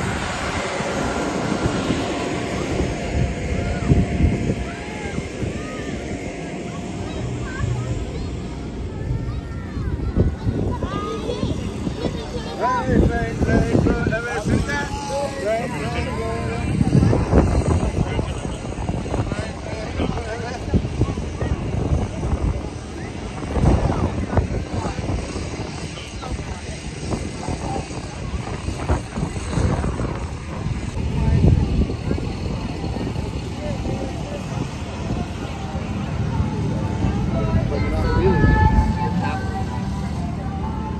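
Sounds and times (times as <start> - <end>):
steady low rumble: 0.0 - 40.9
young children chattering: 0.0 - 40.9.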